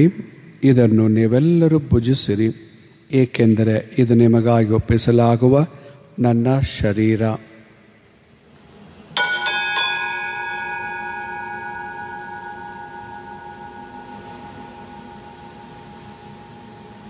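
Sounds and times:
bell ringing: 0:09.2 - 0:17.0.

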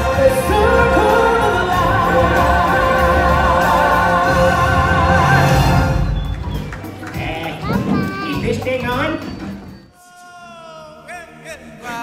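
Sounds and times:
audience clapping and cheering: 0:00.0 - 0:09.6
stage music with sung note: 0:00.0 - 0:10.7
small child's voice: 0:07.6 - 0:08.4.

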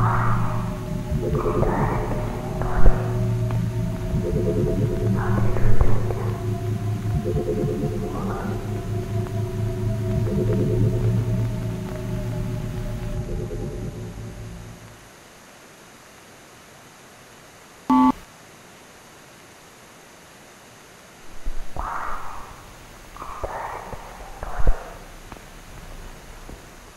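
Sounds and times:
faint hiss: 0:00.0 - 0:10.3, 0:10.9 - 0:26.9
low sustained music tones: 0:00.0 - 0:15.1
short electronic beep: 0:17.9 - 0:18.2.

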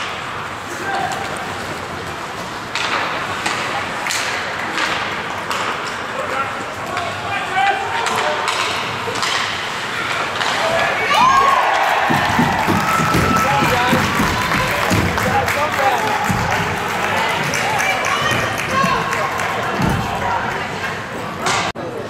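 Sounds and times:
hockey sticks and puck knocking: 0:02.7 - 0:06.0, 0:08.0 - 0:20.2
players shouting: 0:09.8 - 0:21.0.

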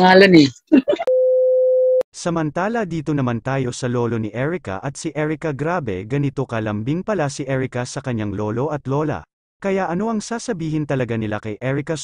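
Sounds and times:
person speaking: 0:00.0 - 0:01.1.

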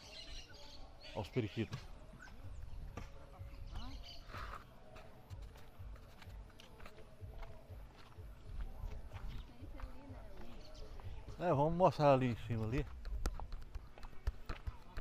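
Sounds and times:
footsteps on dirt path: 0:01.6 - 0:15.0.

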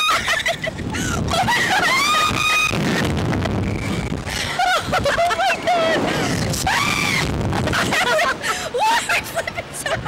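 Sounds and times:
wind rushing on microphone: 0:00.1 - 0:09.0
women screaming: 0:01.3 - 0:02.8, 0:04.6 - 0:07.3.

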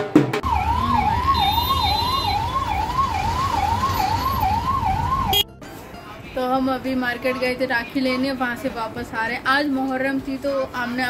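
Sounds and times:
electronic siren yelping: 0:00.4 - 0:05.5.

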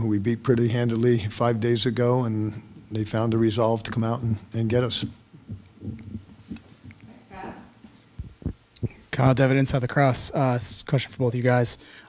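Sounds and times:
short low thuds: 0:08.2 - 0:09.2.

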